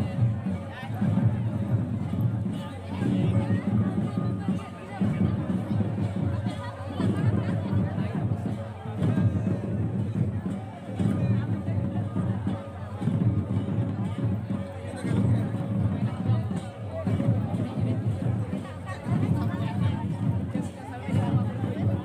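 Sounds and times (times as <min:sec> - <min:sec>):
crowd chatter: 0:00.0 - 0:22.0
drum beats: 0:00.0 - 0:22.0.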